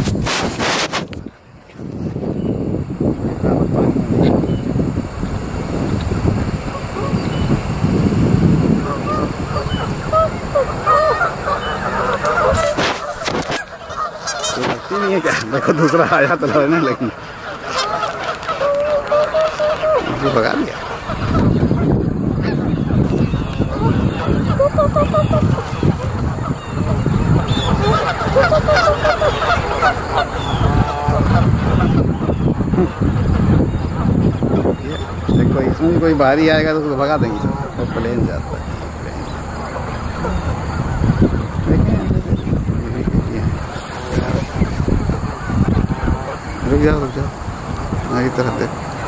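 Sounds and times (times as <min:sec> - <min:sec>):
geese honking: 0:00.0 - 0:49.0.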